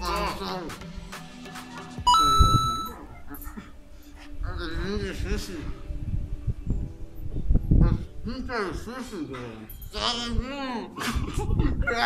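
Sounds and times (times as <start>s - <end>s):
background music: 0.0s - 12.0s
electronic ding: 2.1s - 3.0s.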